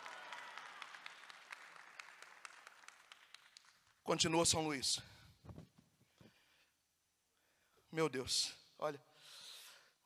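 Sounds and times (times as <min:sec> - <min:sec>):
audience applause: 0:00.0 - 0:03.7.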